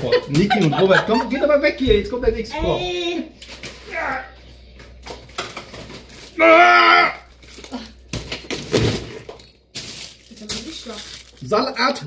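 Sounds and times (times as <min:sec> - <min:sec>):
packaging rustling: 0:07.3 - 0:12.0.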